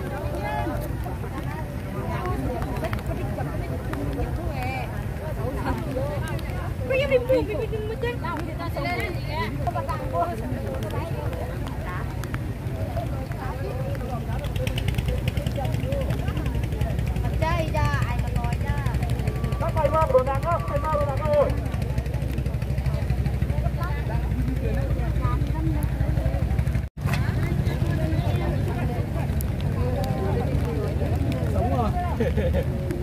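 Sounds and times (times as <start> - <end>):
crowd talking: 0.0 - 33.0.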